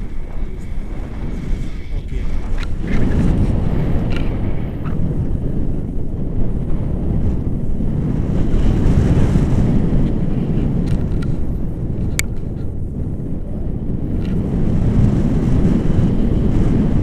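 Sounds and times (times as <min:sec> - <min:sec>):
wind rushing over microphone: 0:00.0 - 0:17.0.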